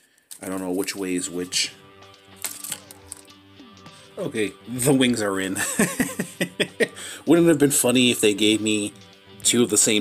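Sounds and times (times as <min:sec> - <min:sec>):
quiet background music: 0:00.4 - 0:10.0.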